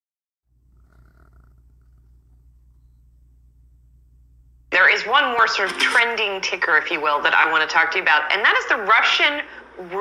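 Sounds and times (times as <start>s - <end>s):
faint low hum: 0.5s - 10.0s.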